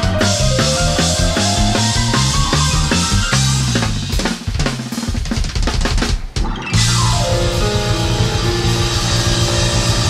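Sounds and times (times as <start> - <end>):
bass and keyboard notes: 0.0 - 4.7, 6.4 - 10.0
drum kit playing fast: 0.0 - 10.0.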